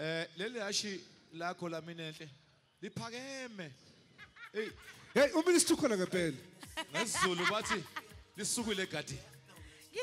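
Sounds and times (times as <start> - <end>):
person laughing: 6.8 - 8.1.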